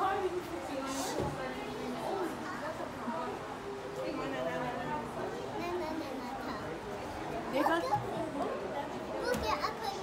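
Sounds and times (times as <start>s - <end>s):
children's voices chattering: 5.4s - 10.0s.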